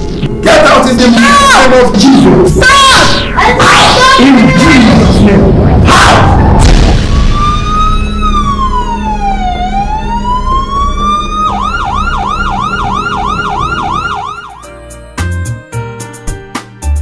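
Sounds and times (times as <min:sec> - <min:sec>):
music: 0:00.0 - 0:17.0
emergency siren wailing and yelping: 0:05.8 - 0:14.7.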